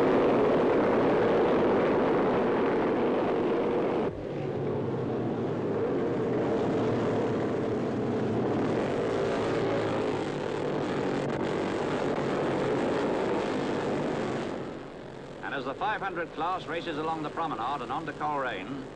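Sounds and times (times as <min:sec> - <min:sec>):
racing motorcycles roaring: 0:00.0 - 0:18.9.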